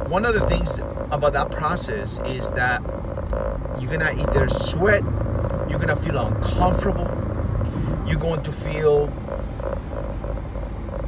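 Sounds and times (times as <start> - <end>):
faint pulsing tone: 0.0 - 11.0
low rumble inside car: 0.0 - 11.0.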